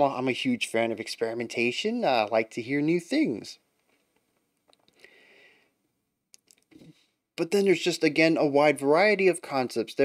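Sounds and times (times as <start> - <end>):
person speaking: 0.0 - 3.7, 6.3 - 10.0
faint small clicks: 3.8 - 5.1, 6.3 - 6.9
soft breath: 4.9 - 5.9.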